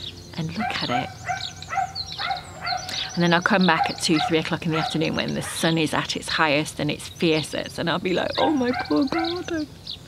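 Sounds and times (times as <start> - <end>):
faint bird chirps: 0.0 - 6.0, 6.9 - 10.0.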